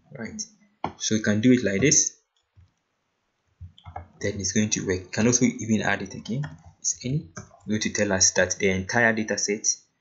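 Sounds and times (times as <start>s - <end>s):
person speaking: 0.1s - 2.1s, 3.6s - 9.8s
keyboard and mouse clicks: 3.6s - 4.2s, 6.1s - 7.7s.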